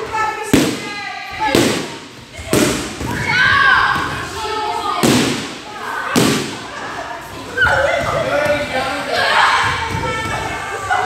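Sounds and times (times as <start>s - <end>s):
children's voices: 2.2s - 11.0s.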